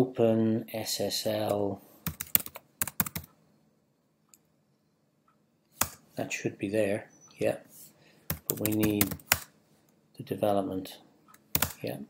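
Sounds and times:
keyboard typing: 0:02.0 - 0:03.4, 0:08.3 - 0:09.5, 0:11.3 - 0:11.9.

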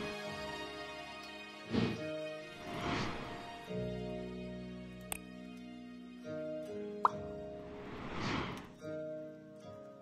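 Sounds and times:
instrumental background music: 0:00.0 - 0:10.0.

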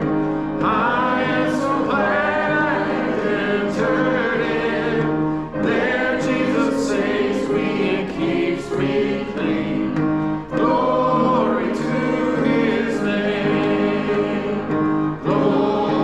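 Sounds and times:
congregation singing a hymn: 0:00.0 - 0:16.0.

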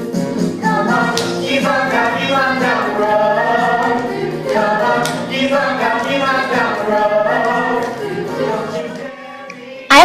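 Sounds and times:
group singing in chorus: 0:00.1 - 0:10.0.

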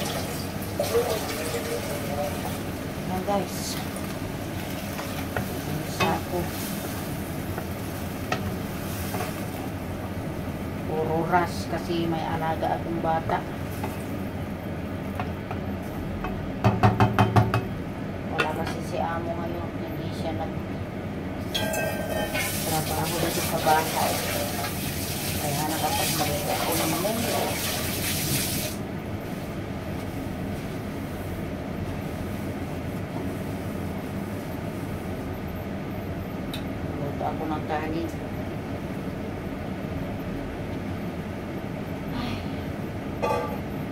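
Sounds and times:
range hood fan rumble: 0:00.0 - 0:43.9
metal pot knocking: 0:16.6 - 0:17.7.

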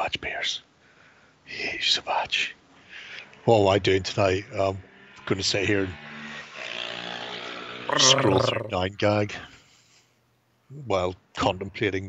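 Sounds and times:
people talking: 0:03.5 - 0:04.8, 0:07.9 - 0:09.4, 0:10.8 - 0:12.0
man's wordless drone: 0:07.9 - 0:08.8.

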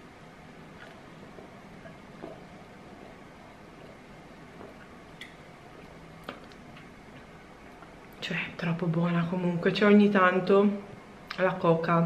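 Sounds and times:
room hiss: 0:00.0 - 0:12.0.

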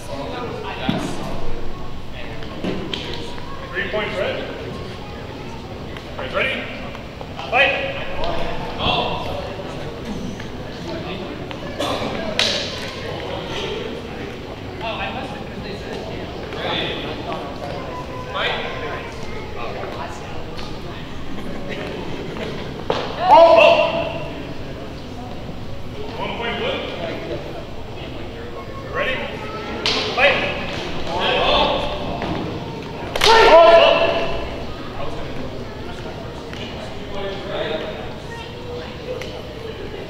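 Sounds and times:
echoing voices and chatter: 0:00.0 - 0:40.0
person shouting: 0:23.2 - 0:24.2, 0:33.2 - 0:34.4.

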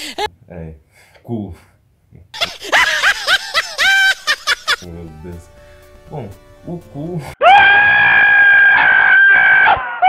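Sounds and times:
loud high-pitched scream: 0:07.4 - 0:10.0.

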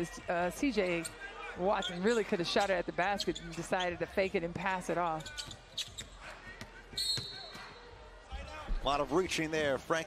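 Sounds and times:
arena hubbub: 0:00.0 - 0:10.0
referee's whistle blast: 0:07.0 - 0:07.8.

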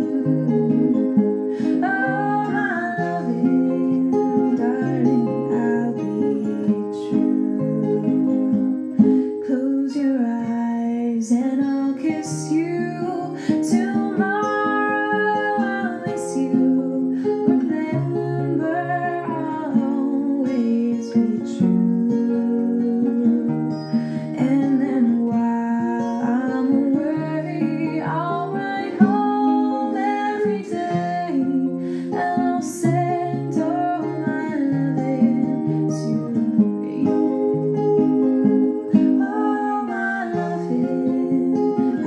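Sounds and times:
acoustic guitar playing: 0:00.0 - 0:42.0.

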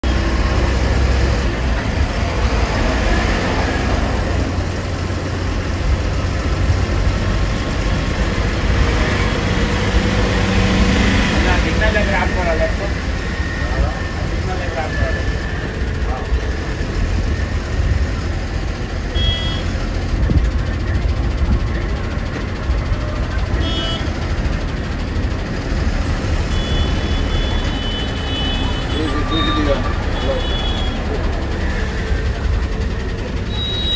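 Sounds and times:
bus engine and road rumble: 0:00.0 - 0:33.9.

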